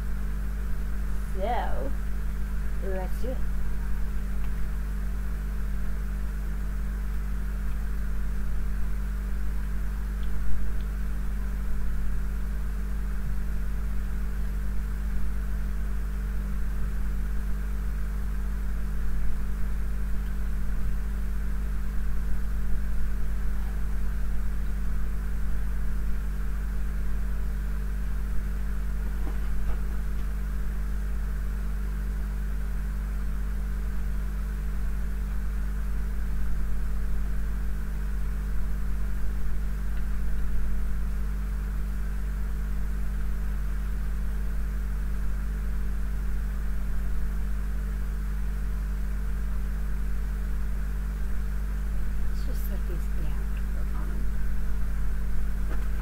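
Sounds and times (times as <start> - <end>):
constant hiss: 0.0 - 56.0
steady low hum: 0.0 - 56.0.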